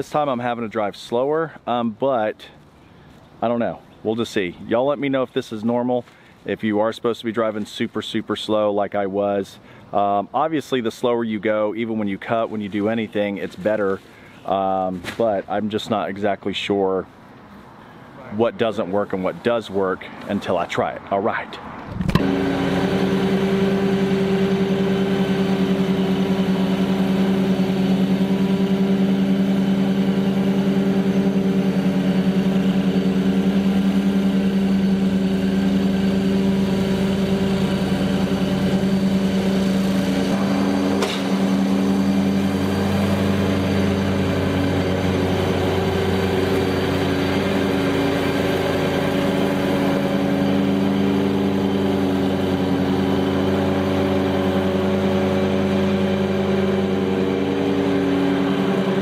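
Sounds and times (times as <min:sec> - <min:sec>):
mower engine and blower humming: 0:22.0 - 0:59.0.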